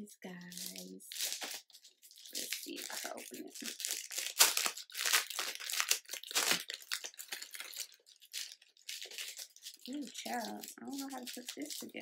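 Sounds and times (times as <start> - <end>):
packaging tearing and crinkling: 0.4 - 12.0.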